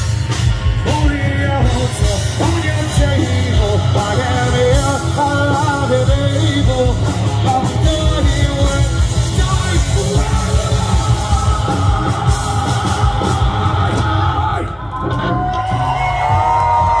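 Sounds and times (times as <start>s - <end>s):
heavy drums: 0.0s - 17.0s
live rock band playing: 0.0s - 17.0s.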